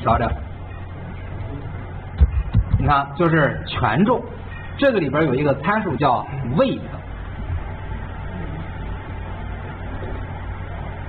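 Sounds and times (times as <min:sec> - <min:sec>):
faint steady whine: 0:00.0 - 0:11.0
low background hum: 0:00.0 - 0:11.0.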